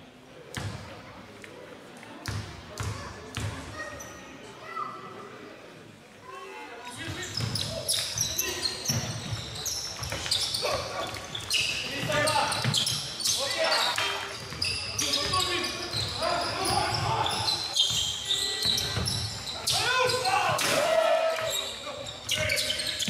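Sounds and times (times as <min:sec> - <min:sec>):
shoe squeaks on court: 0:07.0 - 0:20.7, 0:21.4 - 0:23.0
players shouting: 0:14.6 - 0:22.9.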